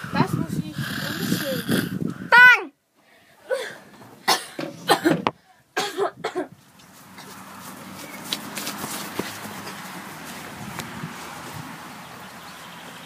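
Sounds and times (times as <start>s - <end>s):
outdoor background hiss: 0.0s - 13.0s
child making cough-like bursts: 3.6s - 5.2s, 5.8s - 6.6s.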